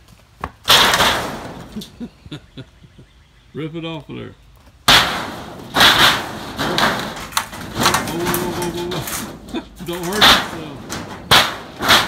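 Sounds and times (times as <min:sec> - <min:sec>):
metal panel crashing and rattling: 0:00.7 - 0:01.9, 0:04.9 - 0:12.0.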